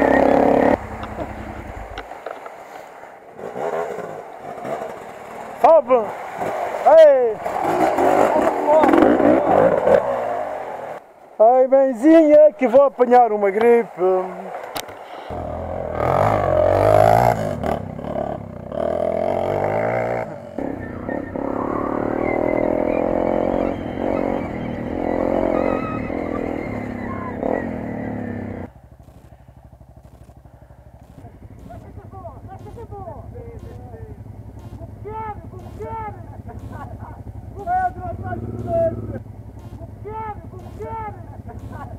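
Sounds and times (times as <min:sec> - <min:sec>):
motorcycle engines revving: 0:00.0 - 0:11.1, 0:12.3 - 0:41.9
voices: 0:05.6 - 0:16.3, 0:20.5 - 0:28.7, 0:31.0 - 0:41.9.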